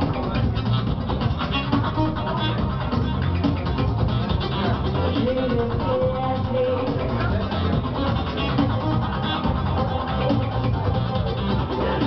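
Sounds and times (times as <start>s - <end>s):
electronic beat: 0.0s - 12.0s
guitar: 0.0s - 12.0s
heavy bass line: 0.0s - 12.0s
live band music: 0.0s - 12.0s.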